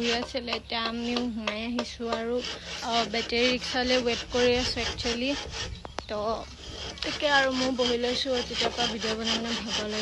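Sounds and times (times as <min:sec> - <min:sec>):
woman talking: 0:00.0 - 0:10.0.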